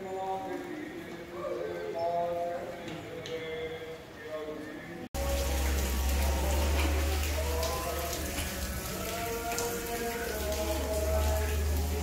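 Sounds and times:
rain falling and dripping: 5.2s - 12.0s.

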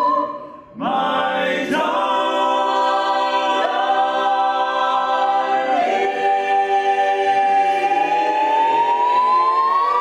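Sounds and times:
a cappella vocal ensemble: 0.0s - 10.0s.

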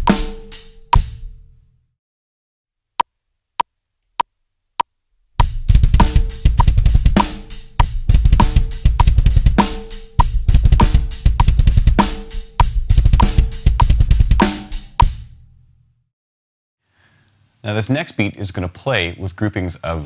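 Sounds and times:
cymbal and snare strokes: 0.0s - 1.3s, 5.4s - 15.3s
drum kit playing: 0.0s - 1.4s, 5.4s - 15.5s
double bass drum: 5.4s - 15.4s.

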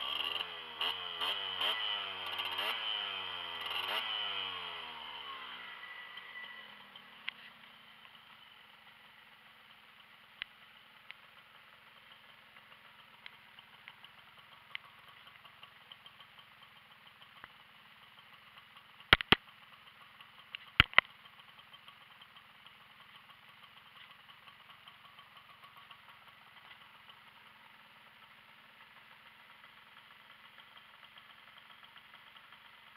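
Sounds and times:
moped engine idling: 0.0s - 32.9s
light ticks: 6.9s - 8.4s, 9.7s - 11.4s, 12.2s - 15.7s, 16.7s - 17.6s, 19.0s - 19.5s, 20.3s - 22.4s
sharp clicks: 19.0s - 19.5s, 20.4s - 22.2s.

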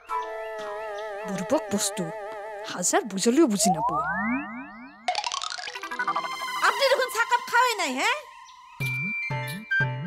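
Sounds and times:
bright electronic jingle: 3.6s - 7.0s
rising synthesized pitch glides: 3.6s - 7.5s.

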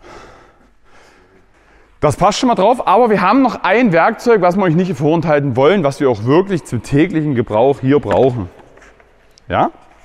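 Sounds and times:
man breathing out: 0.0s - 2.0s
low workshop hall noise: 0.0s - 10.0s.

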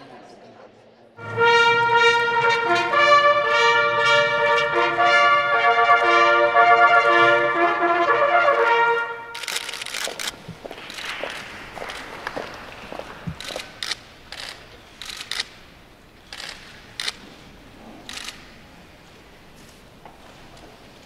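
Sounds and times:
brass fanfare: 1.2s - 10.3s
camera shutters clicking: 9.4s - 11.2s, 18.1s - 18.5s.

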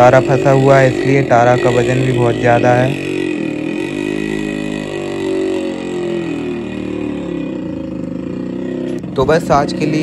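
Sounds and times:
motorcycle engine revving: 0.0s - 10.0s.

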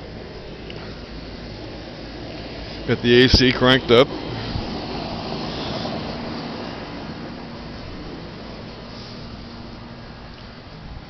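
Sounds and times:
air-conditioning unit running: 0.0s - 11.0s.

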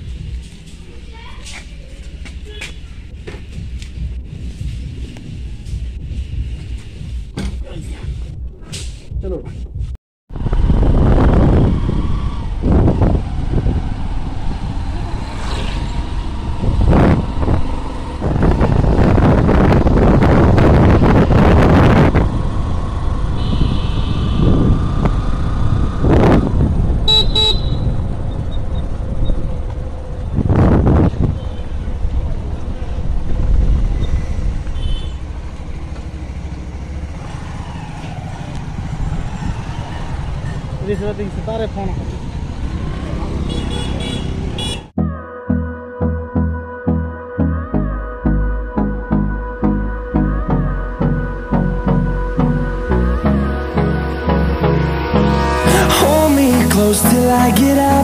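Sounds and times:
road rumble: 0.0s - 45.0s, 47.6s - 58.0s
wind buffeting microphone: 10.3s - 43.5s
motorcycle engine: 10.3s - 44.9s
horn toot: 23.4s - 24.8s, 27.0s - 28.0s, 34.7s - 35.3s, 43.3s - 44.9s.

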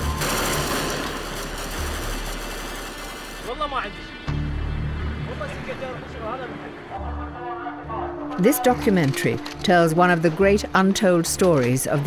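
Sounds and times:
rapid rifle fire: 0.0s - 3.5s
background music: 0.0s - 12.0s.

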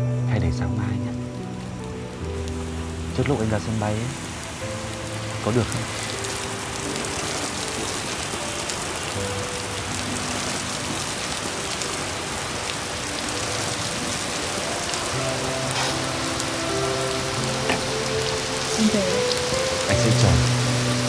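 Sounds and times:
soft music of low held notes: 0.0s - 21.0s
steady rain falling: 0.0s - 21.0s.

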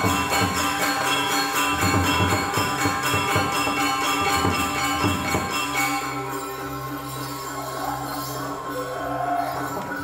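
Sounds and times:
gamelan metallophones and gongs: 0.0s - 10.0s.

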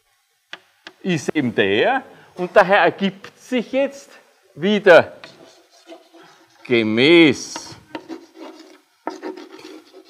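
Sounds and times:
chalk writing on blackboard: 5.2s - 10.0s.

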